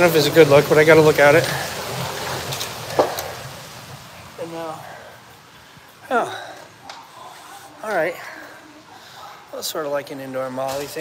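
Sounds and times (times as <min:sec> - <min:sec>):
indoor lobby background noise: 0:00.0 - 0:11.0.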